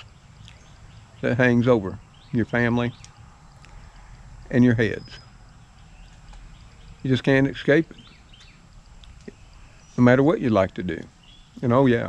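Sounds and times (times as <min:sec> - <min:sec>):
faint high chirps: 0:00.0 - 0:12.0
low steady rumble: 0:00.0 - 0:12.0.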